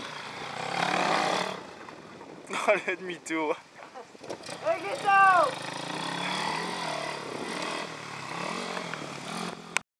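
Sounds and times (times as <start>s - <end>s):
pit bike engines buzzing: 0.0s - 2.8s, 4.2s - 9.8s.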